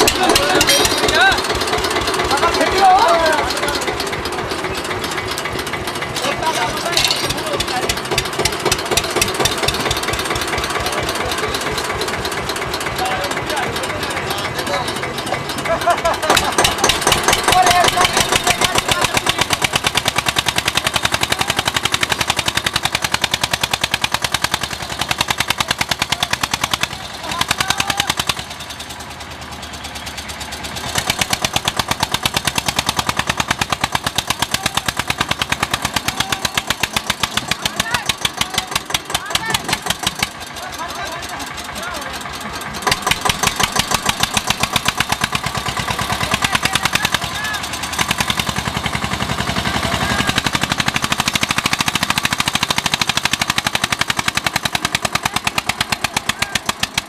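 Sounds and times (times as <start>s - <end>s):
tractor diesel engine chugging: 0.0s - 57.0s.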